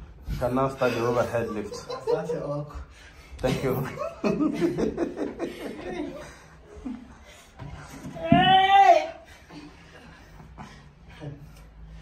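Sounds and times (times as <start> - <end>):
loud shout: 8.1 - 9.3.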